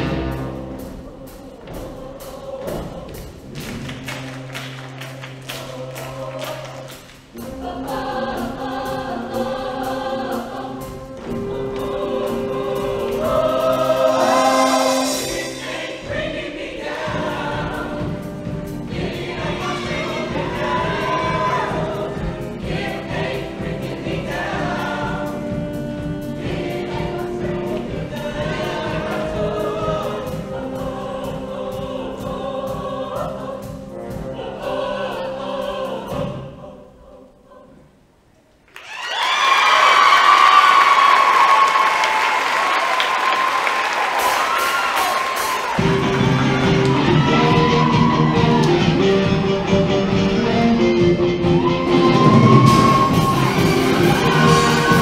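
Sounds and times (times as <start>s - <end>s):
choir singing: 0.0s - 38.2s, 44.4s - 55.0s
steady drum beat: 6.9s - 35.0s, 44.1s - 55.0s
live band: 10.8s - 16.3s, 44.0s - 55.0s.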